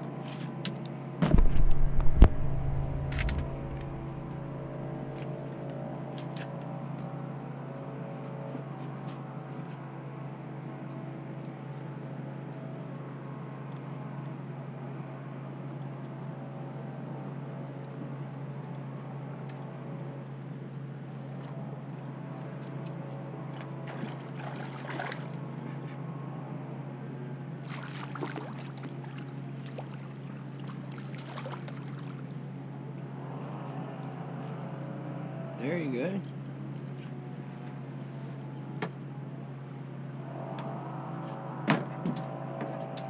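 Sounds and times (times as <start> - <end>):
boat motor humming: 1.2 - 6.1
fish splashing at surface: 27.7 - 29.9.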